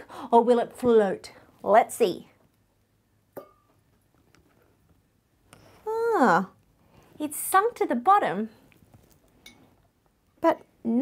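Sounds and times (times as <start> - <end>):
glass jar ringing: 3.4 - 3.7.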